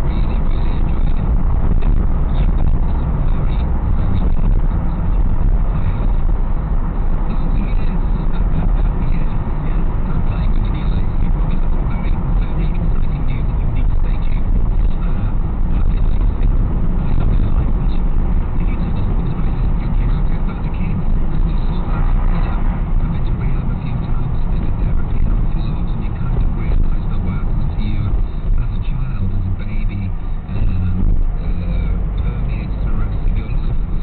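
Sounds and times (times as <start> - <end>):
car engine rumble: 0.0 - 34.0
tyres on road: 0.0 - 34.0.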